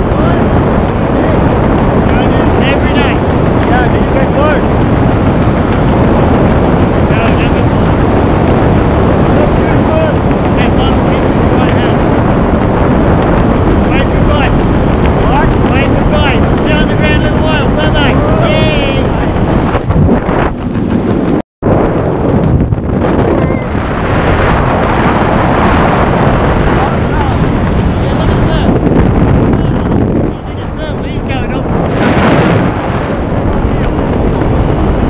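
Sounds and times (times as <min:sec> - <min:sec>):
wind noise on microphone: 0:00.0 - 0:35.0.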